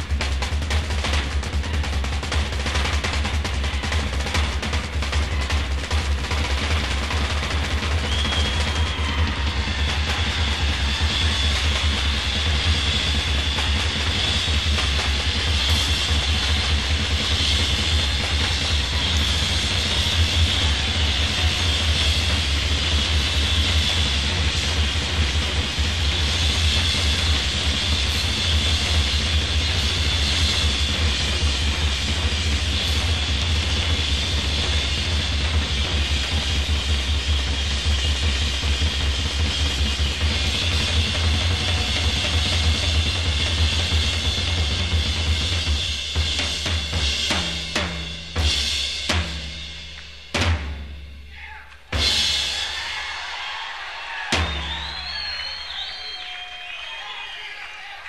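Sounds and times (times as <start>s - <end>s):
hard rock band playing: 0.0s - 47.4s
heavy bass: 0.0s - 50.7s.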